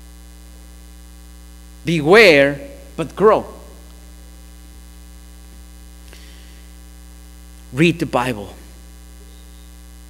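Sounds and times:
electrical mains hum: 0.0 - 10.0
man's voice: 1.8 - 3.8, 7.7 - 8.7.

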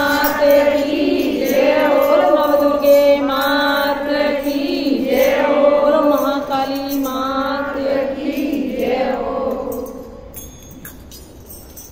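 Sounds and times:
women singing in unison: 0.0 - 10.3
small hand cymbals: 0.0 - 11.9.

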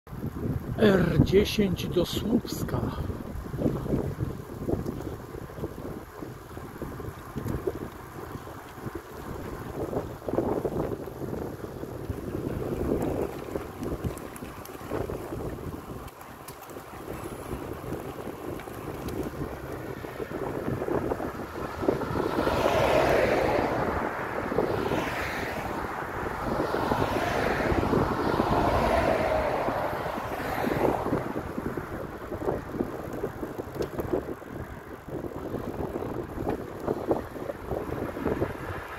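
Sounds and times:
cars passing: 0.1 - 38.9
wind rushing over microphone: 0.1 - 38.9.

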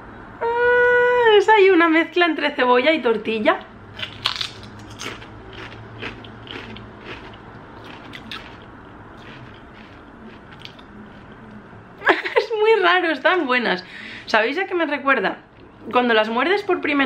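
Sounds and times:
person crunching crisps: 4.0 - 11.5.

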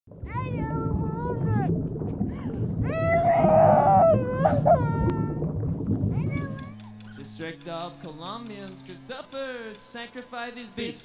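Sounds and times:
high drawn-out wail: 2.9 - 5.4.

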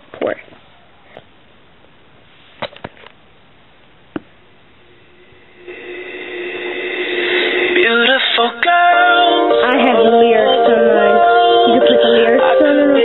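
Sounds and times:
music from tablet speaker: 5.7 - 13.0.

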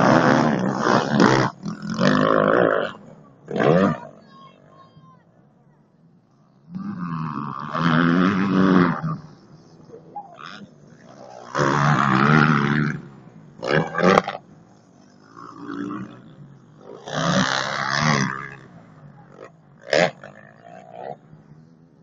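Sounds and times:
motocross bike engine revving: 0.0 - 22.0.

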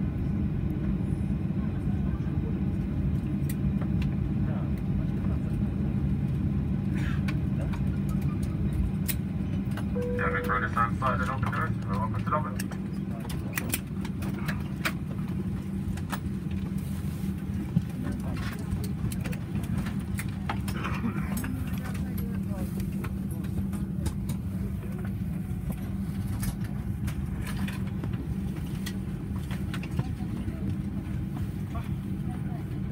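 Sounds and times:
jet engines idling: 0.0 - 32.9.

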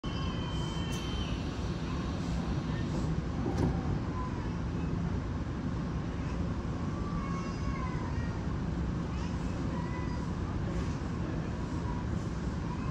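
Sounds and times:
train low hum: 0.0 - 12.9
train sliding doors closing: 0.1 - 4.1.

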